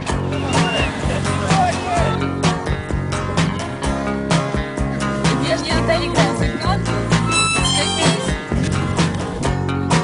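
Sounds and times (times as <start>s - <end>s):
song with guitar and beat: 0.0s - 10.0s
harmonica playing: 7.2s - 8.4s.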